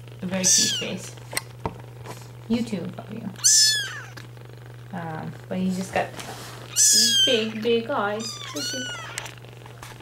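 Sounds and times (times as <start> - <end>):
steady low hum: 0.0 - 10.0
kitten mewing: 0.3 - 1.0, 3.4 - 4.2, 6.7 - 9.4.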